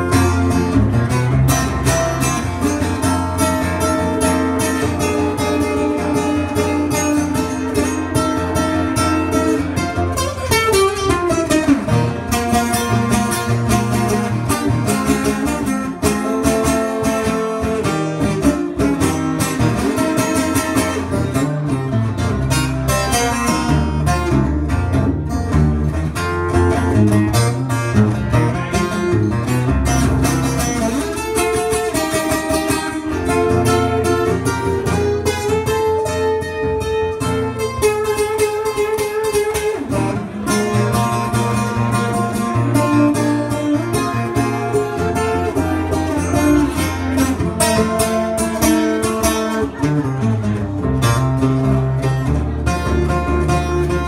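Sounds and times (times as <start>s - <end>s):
acoustic guitar: 0.0s - 54.0s.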